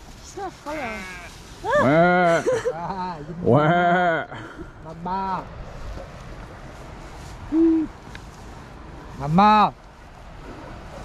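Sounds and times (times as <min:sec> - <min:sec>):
faint outdoor background noise: 0:00.0 - 0:11.0
low hoot-like call: 0:07.5 - 0:08.0.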